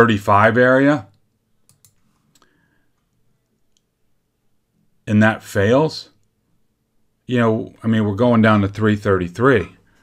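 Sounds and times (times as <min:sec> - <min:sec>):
computer mouse clicks: 0:01.1 - 0:03.9.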